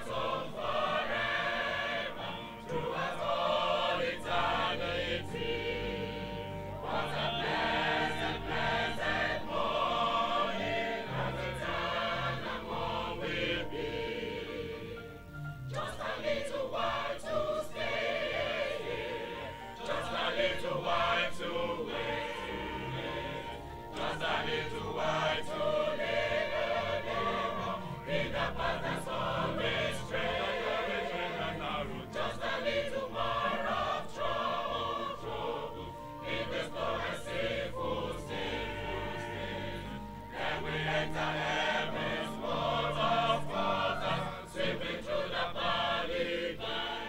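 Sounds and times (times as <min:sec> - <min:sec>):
choir singing a hymn: 0:00.0 - 0:47.0.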